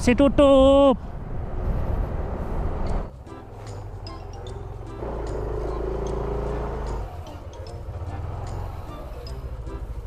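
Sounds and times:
motor scooter engine rumble: 1.1 - 10.0.

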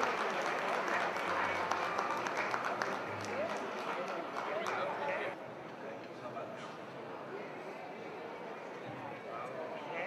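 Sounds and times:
audience applauding: 0.0 - 5.3.

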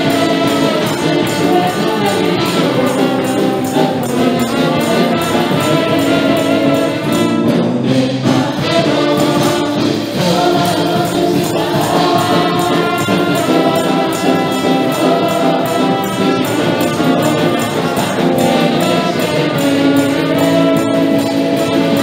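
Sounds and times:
full band with steady beat: 0.0 - 22.0
women singing in harmony: 8.2 - 22.0.

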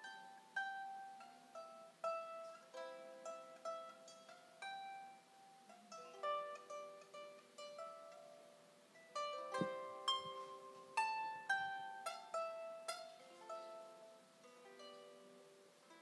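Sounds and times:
harp strings plucked: 9.0 - 16.0.

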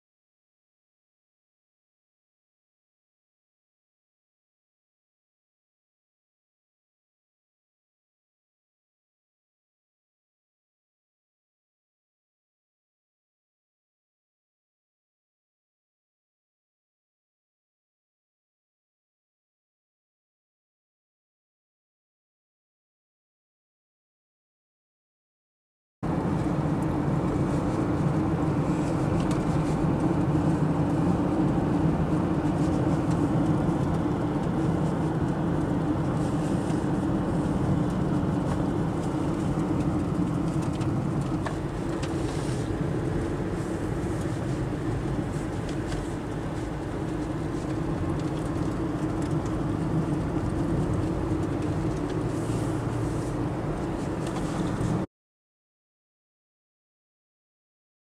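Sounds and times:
car engine and road noise: 26.0 - 55.1.

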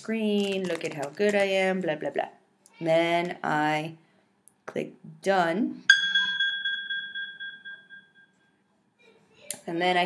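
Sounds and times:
computer electronic ding: 5.9 - 8.3.

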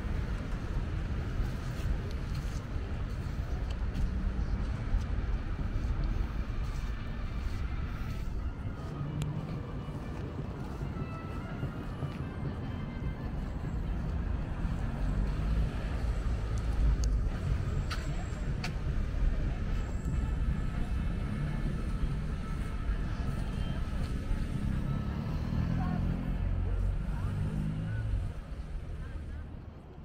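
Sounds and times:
low rumble of road traffic: 0.0 - 30.0
passersby talking: 0.0 - 30.0.

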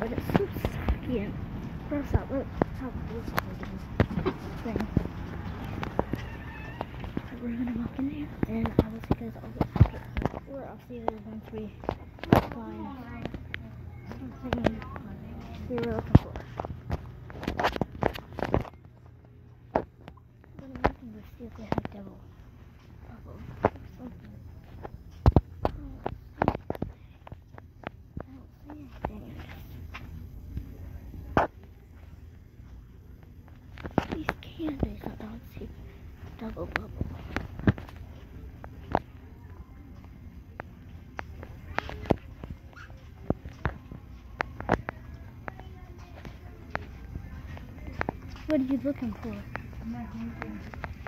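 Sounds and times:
faint voices: 0.0 - 51.0
footsteps: 0.0 - 51.0
faint squeak: 6.1 - 7.0.

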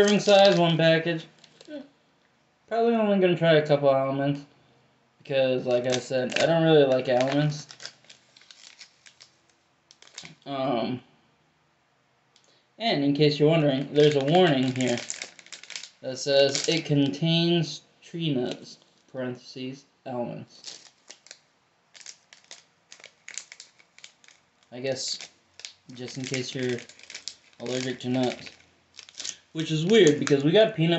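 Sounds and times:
snack package crinkling: 0.0 - 1.8, 5.7 - 10.4, 13.8 - 17.1, 20.6 - 30.6.

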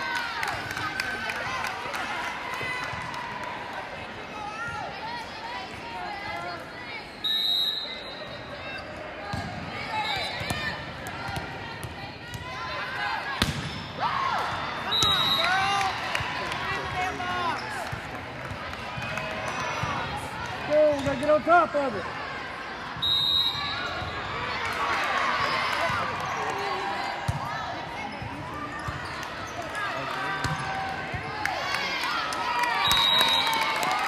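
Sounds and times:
volleyball hits and bounces: 13.3 - 13.9.

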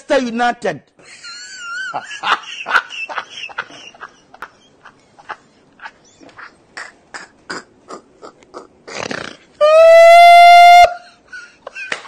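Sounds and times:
man laughing helplessly: 1.0 - 7.0, 9.6 - 12.0.

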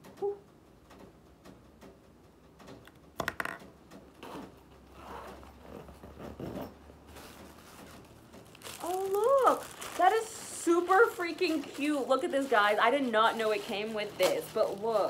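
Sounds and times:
plastic packaging rustling: 6.9 - 15.0.

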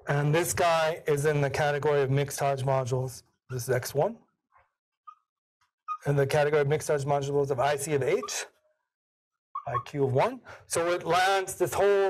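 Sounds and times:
marker squeaking on whiteboard: 5.1 - 6.1, 8.1 - 8.6, 9.6 - 10.0
person speaking: 6.0 - 8.5, 9.7 - 12.0.

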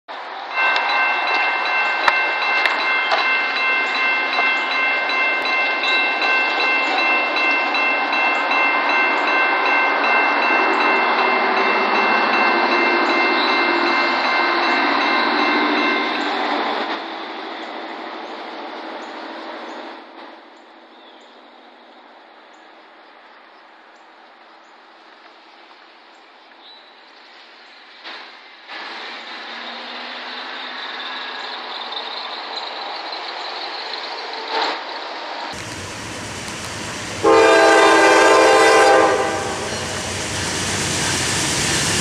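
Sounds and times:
railroad crossing bell ringing: 0.1 - 17.7, 35.5 - 42.0.

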